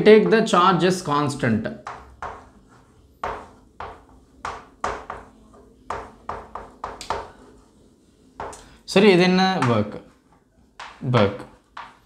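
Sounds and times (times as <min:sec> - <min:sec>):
chalk tapping and scraping on blackboard: 0:00.0 - 0:12.0.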